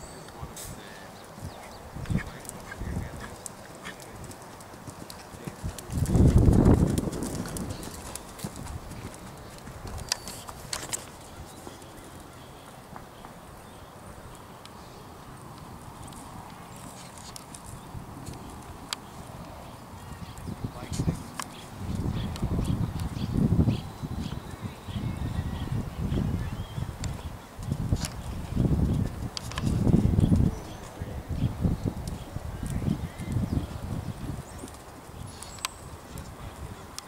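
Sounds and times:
hoofbeats on sand: 2.1s - 11.9s.

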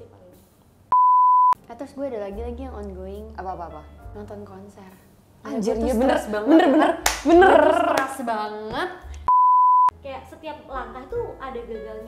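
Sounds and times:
electronic censor beep: 0.9s - 1.6s, 9.3s - 9.9s.

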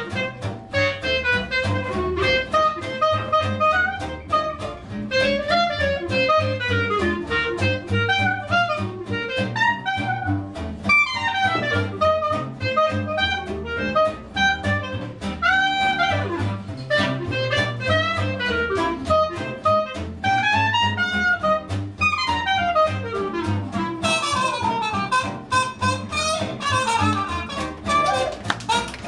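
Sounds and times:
clarinet: 0.0s - 29.0s
guitar strumming: 0.0s - 29.0s
plucked upright bass: 0.0s - 29.0s
trumpet: 0.0s - 29.0s.

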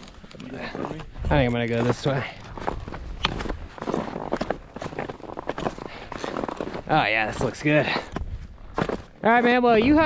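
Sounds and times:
skis scraping on snow: 3.6s - 8.0s.

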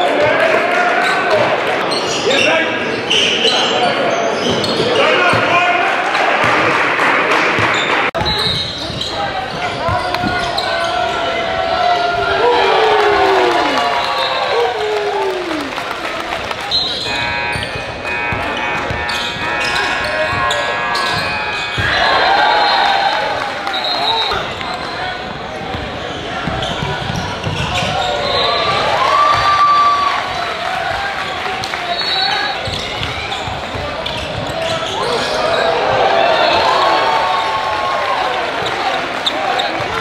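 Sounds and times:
sneakers squeaking: 1.0s - 5.6s, 7.5s - 14.6s, 15.4s - 37.2s, 38.3s - 40.0s
people calling out: 10.0s - 16.0s
basketball dribbling: 17.1s - 22.1s, 24.5s - 28.2s.

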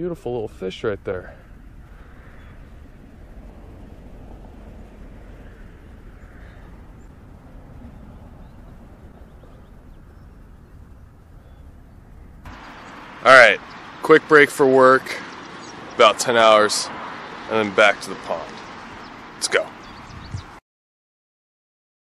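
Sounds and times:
low outdoor rumble: 0.0s - 20.5s.

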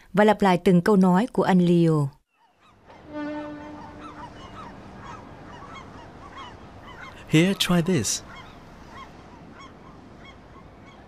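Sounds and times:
gulls calling: 2.3s - 11.0s
ship's horn: 2.8s - 5.5s
steady background hiss: 2.8s - 11.0s.

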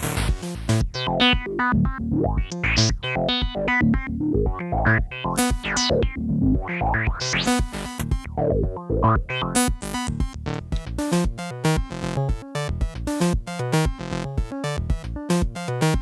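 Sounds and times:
pitched percussive synth notes: 0.7s - 16.0s
steady low kick drum: 6.0s - 11.0s.

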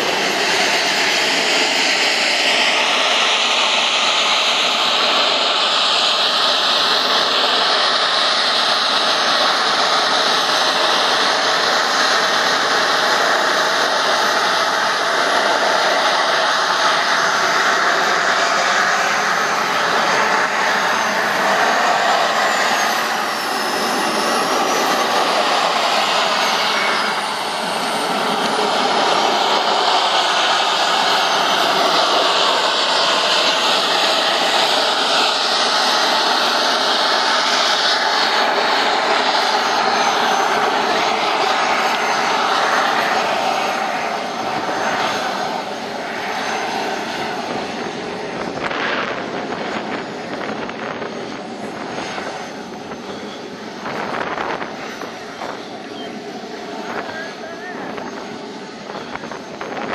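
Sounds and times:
model jet turbine whine: 0.0s - 59.9s.

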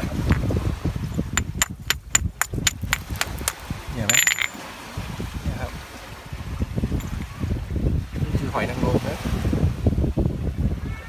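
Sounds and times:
hard fragment tapping oyster shells: 1.1s - 4.7s.

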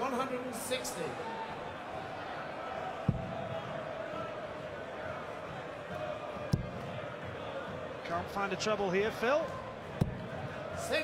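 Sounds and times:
murmur of arena crowd: 0.0s - 11.0s.

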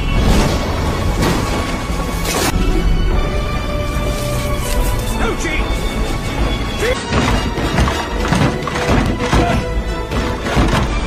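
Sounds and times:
crashing and thudding effects: 0.0s - 2.6s
dramatic film music: 0.0s - 11.0s.

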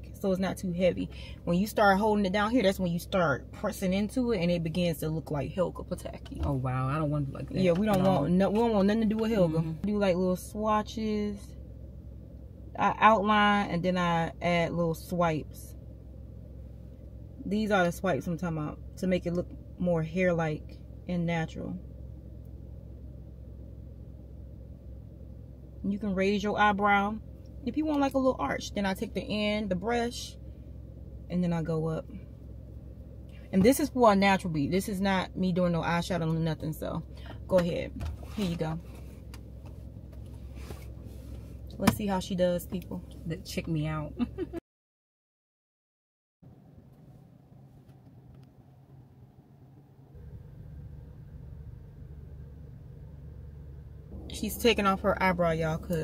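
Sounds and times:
car engine idling inside cabin: 0.0s - 44.6s, 46.5s - 56.0s.

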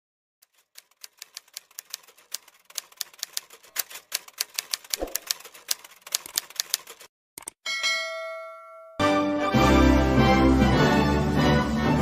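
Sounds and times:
typewriter keystroke clicks: 0.4s - 7.6s.

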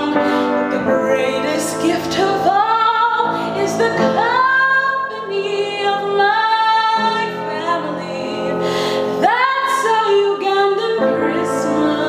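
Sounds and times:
upright piano: 0.0s - 12.0s
woman singing: 0.0s - 12.0s.

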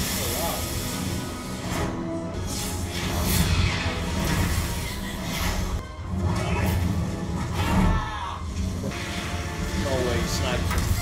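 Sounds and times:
suspenseful soundtrack music: 0.0s - 11.0s.

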